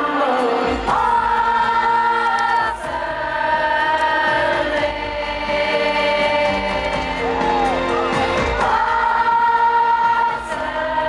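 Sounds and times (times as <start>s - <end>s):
keyboard backing: 0.0s - 11.0s
piano: 0.0s - 11.0s.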